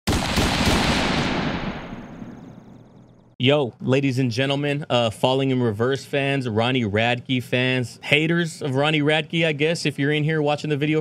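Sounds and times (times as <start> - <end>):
crackling explosion-like hit: 0.1 - 2.8.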